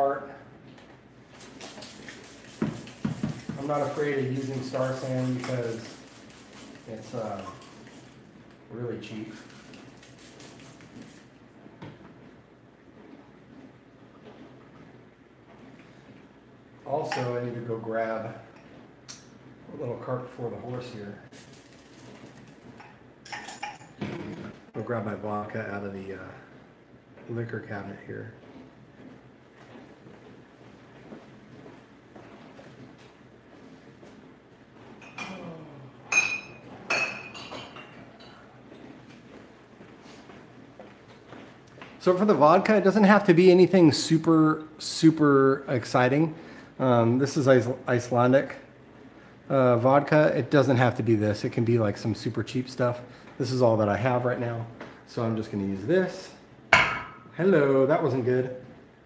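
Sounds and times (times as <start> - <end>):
spray bottle spritzing: 1.3 - 8.3, 9.3 - 11.3, 21.3 - 22.6
glass bottles clinking: 36.1 - 38.4.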